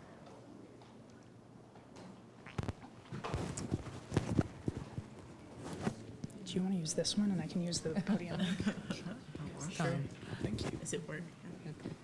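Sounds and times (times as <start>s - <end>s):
clothing rustle: 3.2s - 6.1s.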